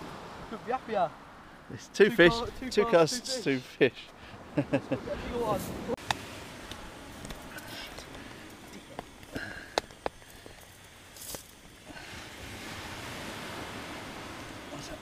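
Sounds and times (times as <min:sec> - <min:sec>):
surf on shingle beach: 0:00.0 - 0:15.0
wind: 0:00.0 - 0:15.0.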